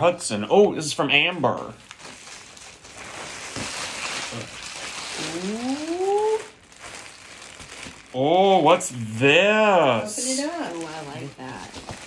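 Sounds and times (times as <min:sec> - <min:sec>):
packaging rustling and crinkling: 0:01.1 - 0:12.0
package being torn open: 0:01.8 - 0:08.2.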